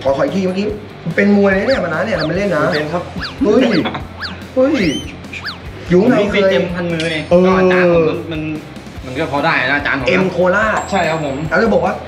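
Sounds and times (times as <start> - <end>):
falling whistle-like chirps: 1.7 - 5.8.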